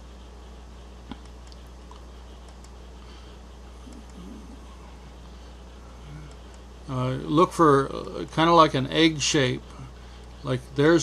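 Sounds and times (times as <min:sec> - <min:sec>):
low steady hum: 0:00.0 - 0:11.0
faint click: 0:01.1 - 0:02.8.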